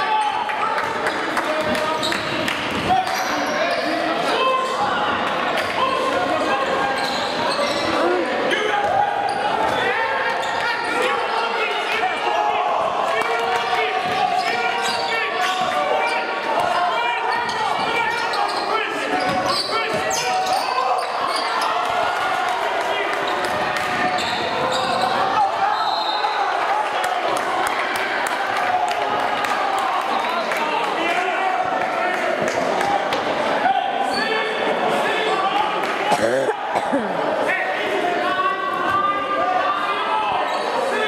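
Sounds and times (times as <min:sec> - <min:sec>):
spectators talking: 0:00.0 - 0:41.0.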